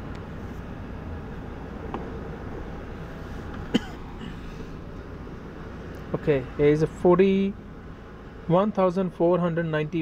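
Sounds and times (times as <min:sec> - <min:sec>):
low background hum: 0:00.0 - 0:10.0
man's short cough: 0:03.7 - 0:04.4.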